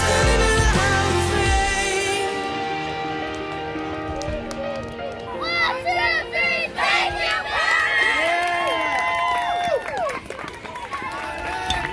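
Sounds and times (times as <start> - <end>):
boys chanting team cheer: 5.4 - 8.1.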